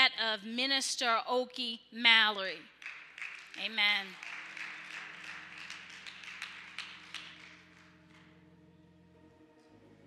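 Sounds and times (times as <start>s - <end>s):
congregation applauding: 2.7s - 8.5s
low sustained instrument chord: 7.5s - 10.0s.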